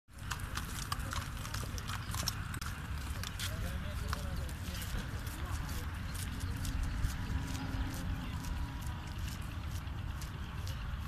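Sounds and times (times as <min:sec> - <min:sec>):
hooves clip-clopping on pavement: 0:00.1 - 0:11.0.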